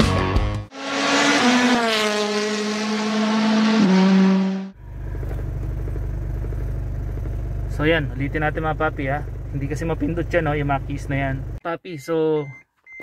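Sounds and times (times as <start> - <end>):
low drone in vehicle cabin: 4.7 - 11.6.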